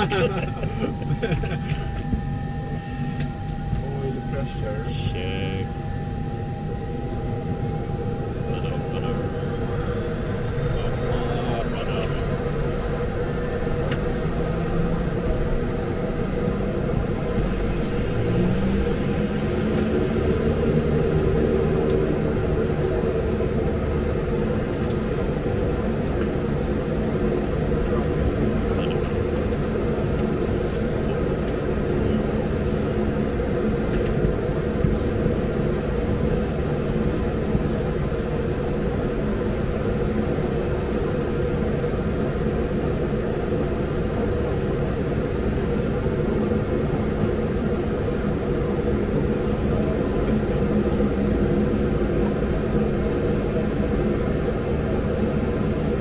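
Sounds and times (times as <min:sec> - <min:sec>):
turboprop engine drone: 0:00.0 - 0:56.0.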